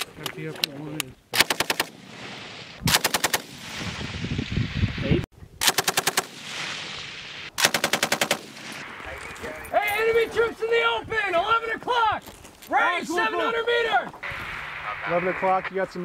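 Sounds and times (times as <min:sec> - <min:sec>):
machine gun bursts: 0:07.6 - 0:08.8.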